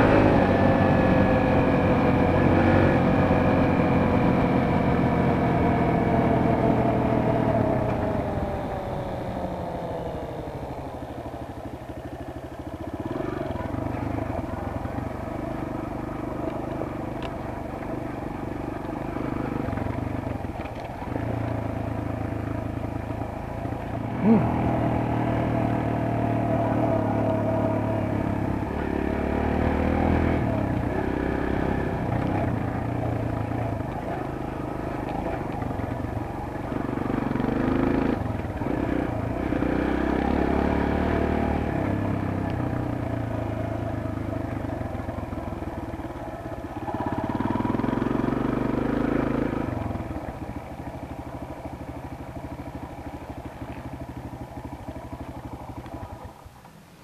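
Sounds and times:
small motorcycle engine revving: 0.0 - 56.6.

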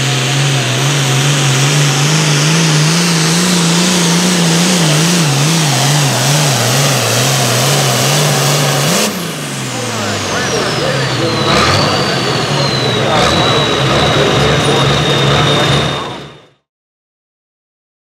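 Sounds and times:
high turbo whine: 0.0 - 16.7
tractor diesel engine under load: 0.0 - 16.7.

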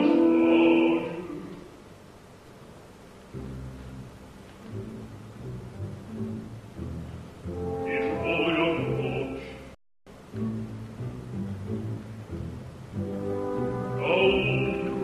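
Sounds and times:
bass voice singing opera: 0.0 - 1.7, 7.7 - 12.0, 13.8 - 15.0
low orchestral notes: 0.0 - 1.7, 3.2 - 15.0.

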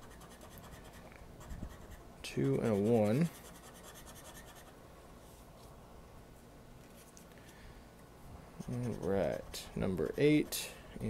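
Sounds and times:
scraper scratching lottery ticket: 0.0 - 4.7, 8.6 - 10.7.

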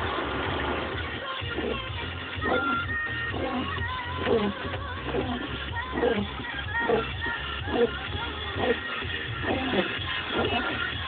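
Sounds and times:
car running rumble: 0.0 - 11.0
music on car radio: 0.0 - 11.0.

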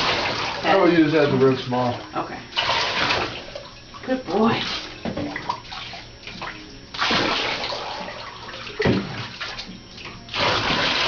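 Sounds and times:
bath water sloshing and splashing: 0.0 - 11.0
water gushing: 0.0 - 11.0.

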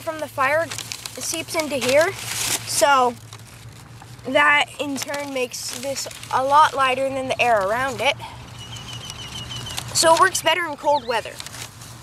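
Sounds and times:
bird chirping rapidly: 8.4 - 11.4.

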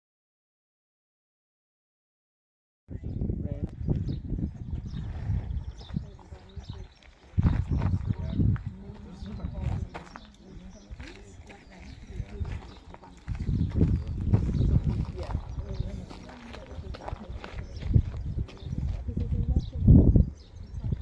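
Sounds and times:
indistinct talking: 5.4 - 21.0.

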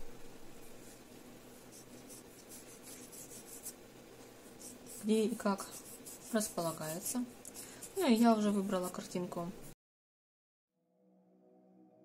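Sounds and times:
pencil sketching on paper: 0.8 - 3.8, 4.4 - 9.8.

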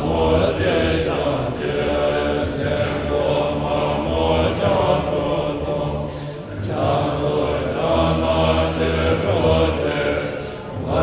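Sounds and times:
monks chanting: 0.0 - 11.0.

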